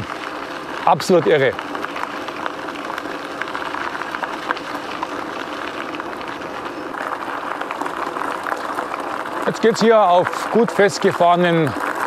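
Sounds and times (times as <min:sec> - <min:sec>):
bike tyres crunching on gravel: 0:00.0 - 0:12.0.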